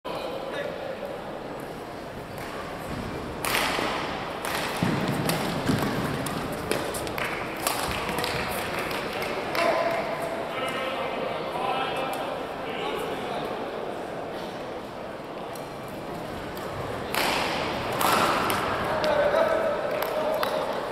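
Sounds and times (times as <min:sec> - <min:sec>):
voices in hall: 0:00.0 - 0:20.9
rackets hitting shuttlecock: 0:03.4 - 0:10.0, 0:16.6 - 0:19.2.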